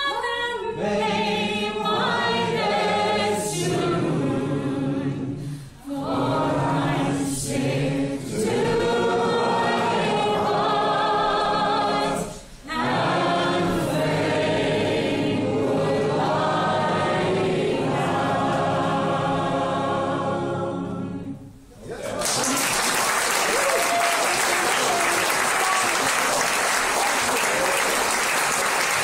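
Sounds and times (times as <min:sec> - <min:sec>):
audience singing chorus: 0:00.6 - 0:21.6.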